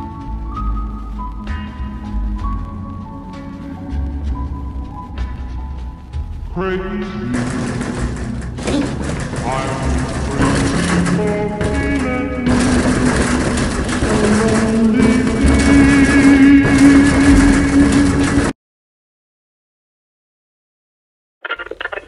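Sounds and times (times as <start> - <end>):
film score sustained tones: 0.0 - 18.5.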